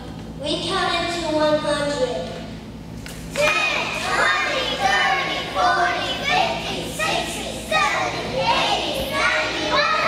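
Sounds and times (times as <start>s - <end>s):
child speaking into a microphone: 0.4s - 2.5s
young children's voices: 3.4s - 10.0s.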